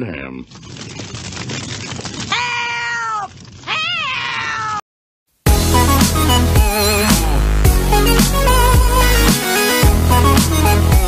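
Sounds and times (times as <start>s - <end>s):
high-pitched cat-like cries: 2.3s - 4.8s
loud electronic music: 5.5s - 11.0s.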